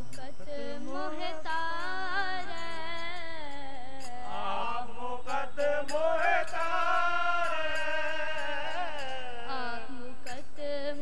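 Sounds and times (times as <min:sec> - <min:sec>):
girl singing a hymn: 0:00.0 - 0:04.4, 0:08.9 - 0:11.0.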